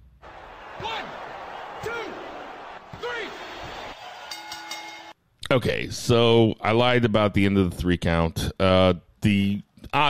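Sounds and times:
man counting: 5.4 - 10.0.

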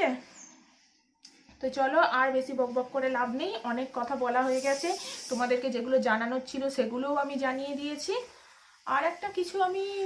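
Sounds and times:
woman talking: 0.0 - 0.3, 1.6 - 10.0
brief hissing: 4.4 - 5.6.

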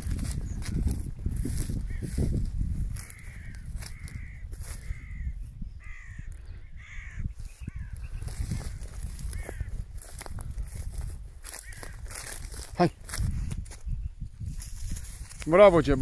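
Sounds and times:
wind rumble on microphone: 0.0 - 16.0
crows cawing: 1.5 - 12.7.

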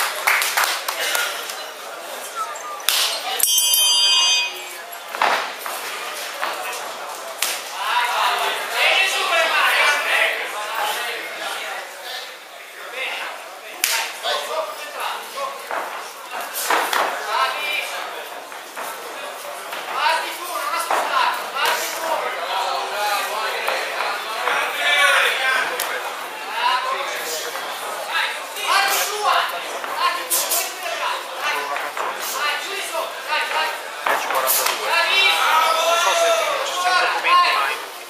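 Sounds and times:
crowd voices: 0.0 - 38.0
bell ringing tone: 3.4 - 4.8
voices shouting in a hall: 34.6 - 38.0.

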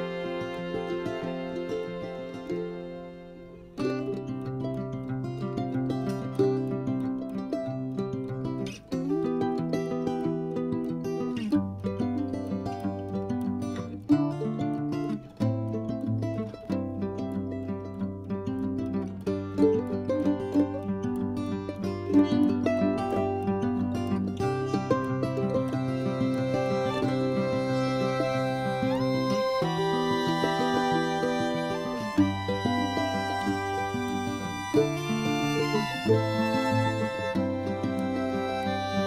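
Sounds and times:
plucked strings music: 0.0 - 39.0.

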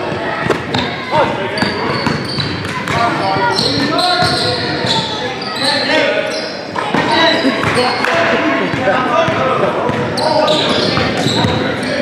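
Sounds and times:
people talking and shouting: 0.0 - 12.0.

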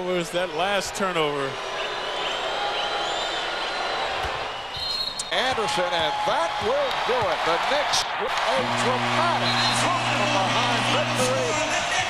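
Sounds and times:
arena crowd noise: 0.0 - 12.0
high whistles: 2.2 - 5.4, 9.3 - 10.2.

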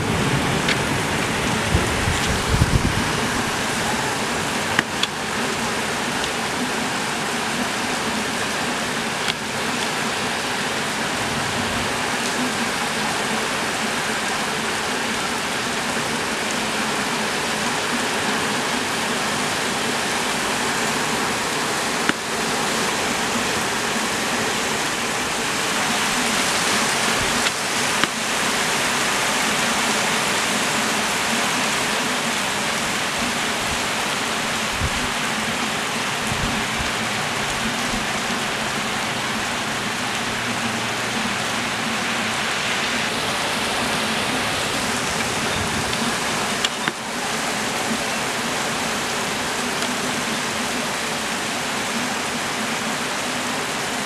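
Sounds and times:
heavy rain on pavement: 0.0 - 54.0.

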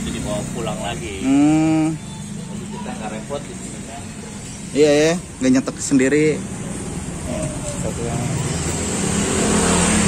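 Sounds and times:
vehicle engine passing: 0.0 - 10.0.

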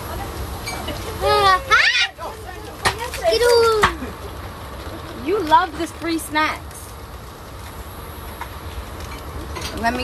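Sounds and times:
jet cabin rumble and hiss: 0.0 - 10.0.

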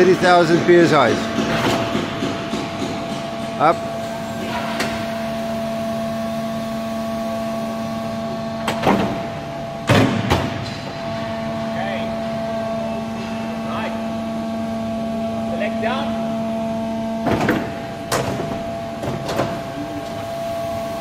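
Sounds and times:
hydraulic power unit hum: 0.0 - 21.0.

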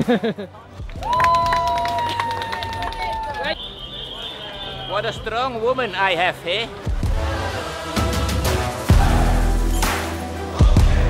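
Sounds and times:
hands clapping in applause: 0.8 - 3.6
high-pitched held cheer: 1.0 - 3.6.

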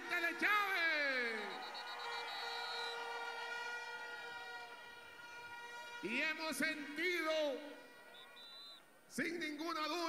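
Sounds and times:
man speaking over loudspeakers: 0.0 - 1.6, 6.0 - 7.8, 9.1 - 10.0.

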